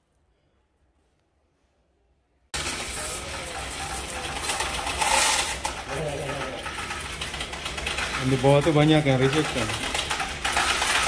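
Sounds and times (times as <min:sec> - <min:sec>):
coins clattering: 0:02.6 - 0:11.0
motorised counting mechanism running: 0:02.6 - 0:11.0.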